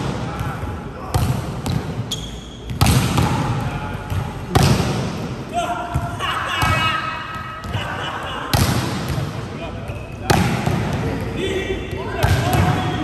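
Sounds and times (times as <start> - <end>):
volleyballs struck and bouncing: 0.0 - 7.8, 8.4 - 13.0.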